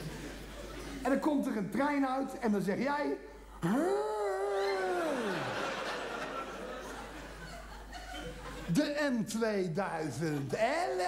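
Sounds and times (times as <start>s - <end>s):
man's drawn-out oooh: 3.6s - 5.6s
audience laughter: 4.9s - 8.7s.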